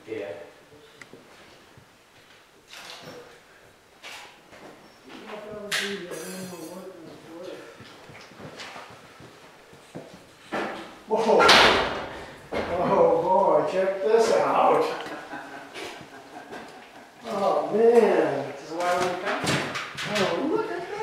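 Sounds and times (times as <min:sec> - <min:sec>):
people talking: 0:05.1 - 0:07.9, 0:11.1 - 0:11.8, 0:12.6 - 0:15.9, 0:17.2 - 0:21.0.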